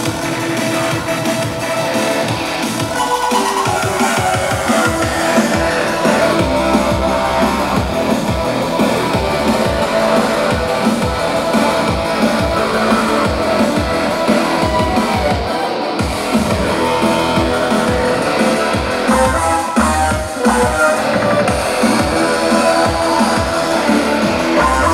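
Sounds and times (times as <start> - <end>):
live band playing electronic rock: 0.0 - 24.9.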